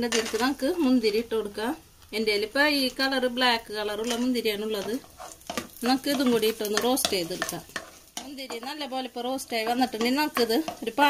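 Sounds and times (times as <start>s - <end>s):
wooden spatula scraping pan: 0.0s - 1.0s, 4.0s - 11.0s
nuts sizzling in oil: 0.0s - 11.0s.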